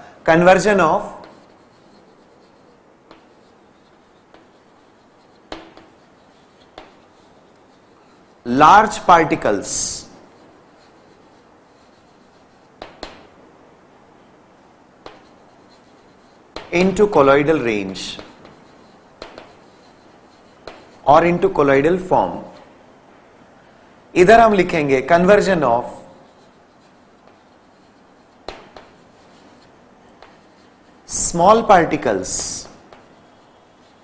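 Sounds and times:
chalk tapping blackboard: 0.0 - 13.5, 14.7 - 22.8, 25.4 - 34.0
man talking: 0.2 - 1.3, 8.5 - 10.2, 16.7 - 18.3, 21.0 - 22.6, 24.1 - 26.2, 31.1 - 32.8
chalk scratching on blackboard: 0.4 - 13.9, 14.6 - 23.0, 24.4 - 34.0.

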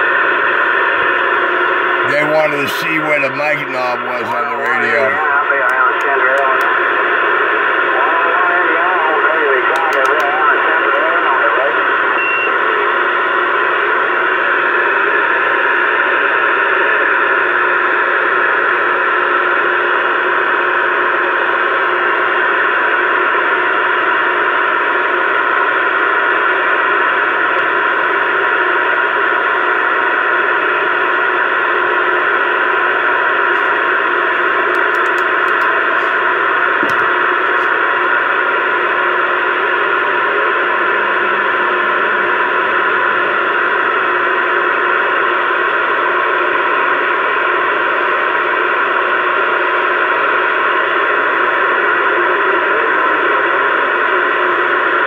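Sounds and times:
radio static hissing: 0.0 - 15.9, 19.3 - 55.0.

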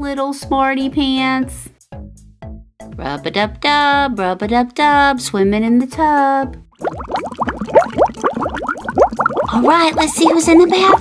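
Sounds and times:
short rising bubbly bloops: 6.8 - 11.0.

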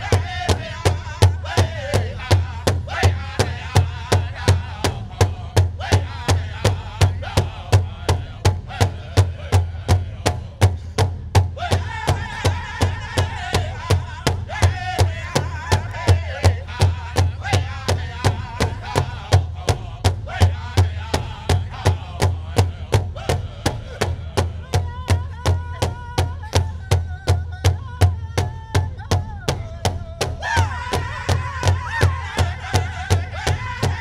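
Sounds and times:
men singing together: 0.0 - 10.8, 11.6 - 26.4, 29.6 - 34.0
large drum beating: 0.0 - 34.0.

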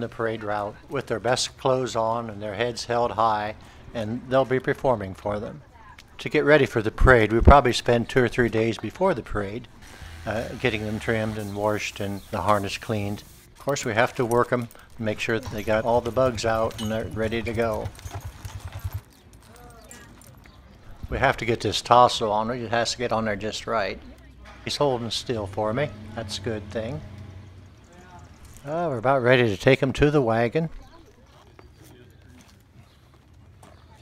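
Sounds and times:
horse hooves clopping: 13.2 - 21.3, 24.1 - 28.8, 30.7 - 34.0
low steady background rumble: 24.2 - 29.3.

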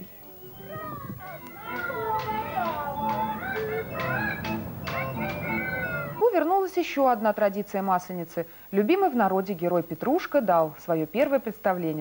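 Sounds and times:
barrel-organ music: 0.0 - 6.2.

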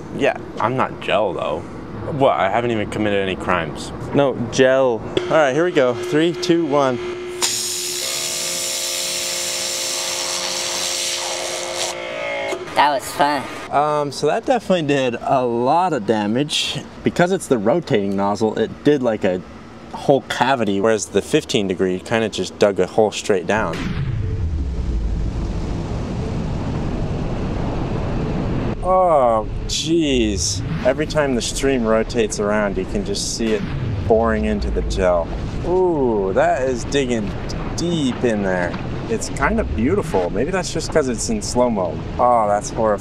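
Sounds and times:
steady machine whine: 4.2 - 13.7, 23.6 - 41.4
pressure washer spraying: 7.4 - 12.0.

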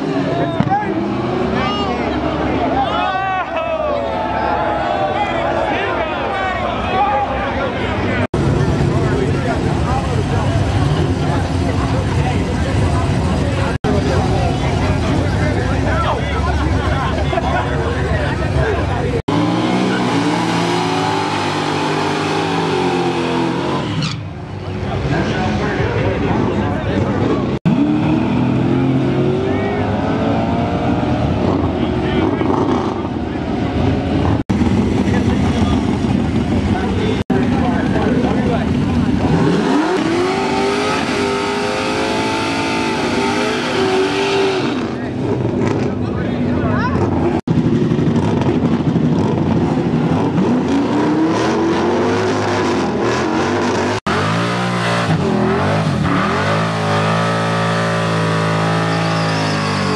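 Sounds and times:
car engines revving hard: 0.0 - 3.0, 4.0 - 59.9
tires spinning on track: 17.3 - 59.9.

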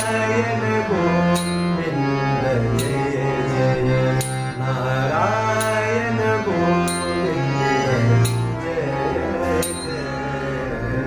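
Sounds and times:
harmonium chords: 0.0 - 11.0
man singing devotional song: 0.0 - 11.0
percussion stroke: 1.3 - 3.3, 6.8 - 7.4, 8.2 - 8.7, 9.4 - 10.2.

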